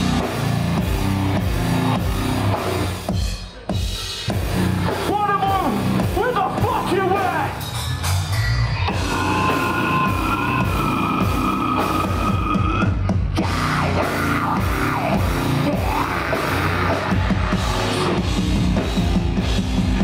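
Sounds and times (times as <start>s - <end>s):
heavy metal band playing live: 0.0s - 20.0s.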